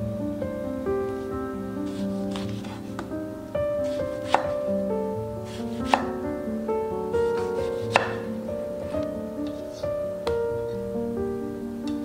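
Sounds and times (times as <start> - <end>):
soft background music: 0.0 - 12.0
knife slicing tomato: 1.9 - 2.8, 3.8 - 4.6, 5.5 - 6.2, 7.3 - 8.3
knife knocking on cutting board: 4.3 - 4.6, 7.4 - 8.2.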